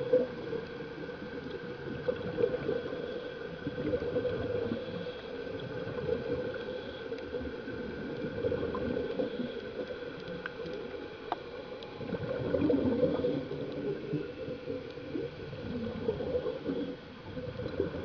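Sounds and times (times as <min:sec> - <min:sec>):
muffled gurgling water: 0:00.0 - 0:18.0.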